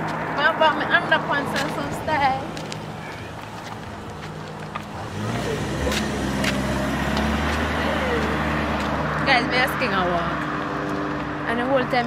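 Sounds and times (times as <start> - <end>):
car driving by: 0.0 - 12.0.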